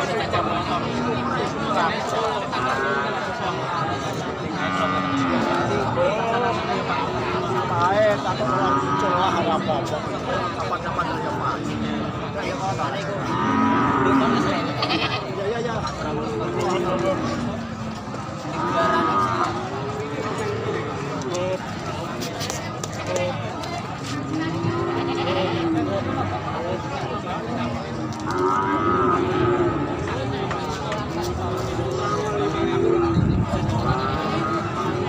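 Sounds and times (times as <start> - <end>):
people talking in background: 0.0 - 35.0
farm animal calling: 13.4 - 15.4, 24.8 - 25.8
goat bleating: 14.6 - 15.4, 24.8 - 25.8.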